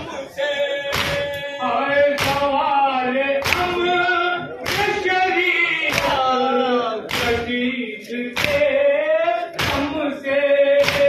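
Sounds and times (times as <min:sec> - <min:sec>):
men chanting in unison: 0:00.0 - 0:11.0
palms slapping chests: 0:02.1 - 0:02.6, 0:03.4 - 0:03.8, 0:04.6 - 0:05.1, 0:05.8 - 0:06.3, 0:07.1 - 0:07.6, 0:08.3 - 0:08.7, 0:09.5 - 0:10.0, 0:10.8 - 0:11.0.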